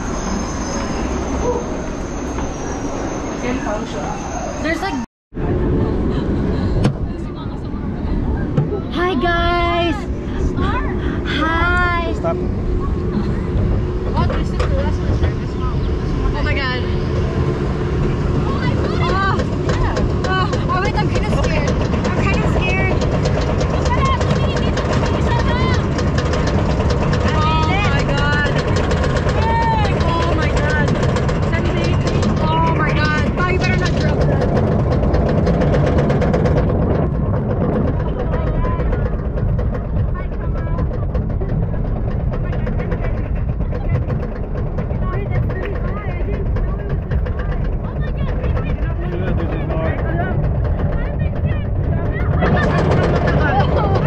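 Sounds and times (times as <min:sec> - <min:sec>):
roller coaster rumbling on track: 0:00.0 - 0:54.0
wind on microphone: 0:05.4 - 0:54.0.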